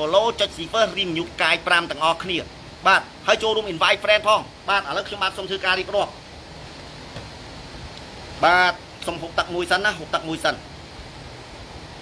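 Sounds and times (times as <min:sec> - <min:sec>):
man talking: 0:00.0 - 0:06.2, 0:08.4 - 0:10.7
faint room hiss: 0:00.0 - 0:12.0.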